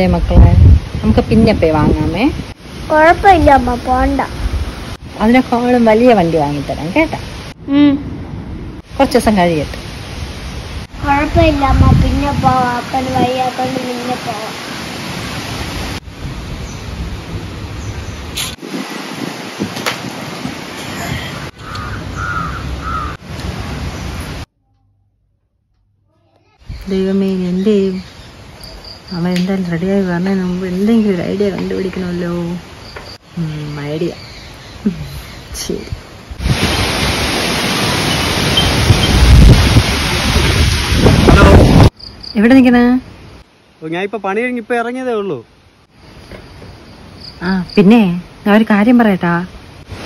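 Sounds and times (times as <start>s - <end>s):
outdoor background hiss: 0.0s - 24.5s, 25.8s - 50.0s
wind buffeting microphone: 0.0s - 24.5s, 35.0s - 42.0s
bird calling: 21.0s - 23.2s.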